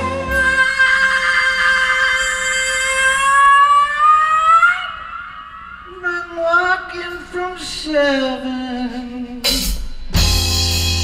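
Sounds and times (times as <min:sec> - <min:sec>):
singer's sustained high wail: 0:00.0 - 0:06.9.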